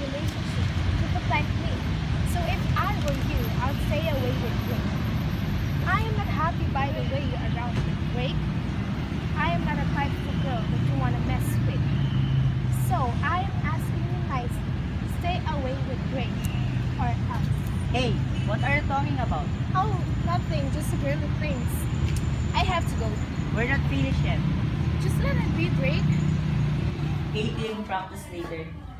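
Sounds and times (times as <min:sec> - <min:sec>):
women talking: 0:00.0 - 0:04.9, 0:05.8 - 0:08.4, 0:09.4 - 0:11.9, 0:12.7 - 0:21.9, 0:22.6 - 0:24.4, 0:25.0 - 0:26.2
low rumble of road traffic: 0:00.0 - 0:28.9.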